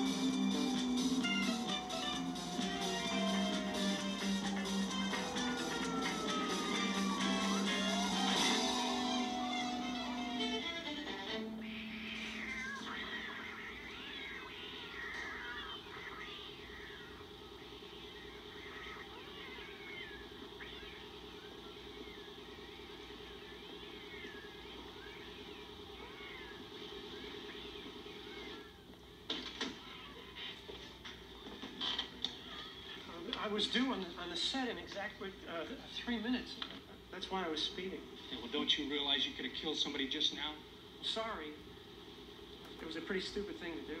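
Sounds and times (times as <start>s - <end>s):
steady low hum: 0.0s - 29.3s
cats meowing: 1.3s - 22.3s, 23.9s - 27.4s.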